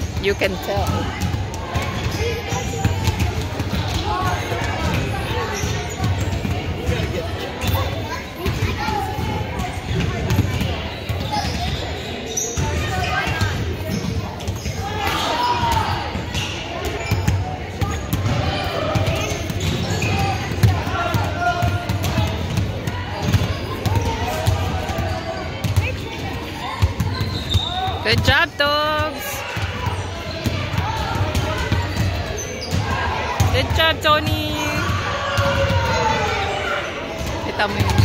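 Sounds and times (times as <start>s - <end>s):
basketballs bouncing on hardwood: 0.0s - 7.8s, 16.8s - 26.1s, 26.8s - 36.2s, 37.2s - 38.0s
voices talking: 0.0s - 38.0s.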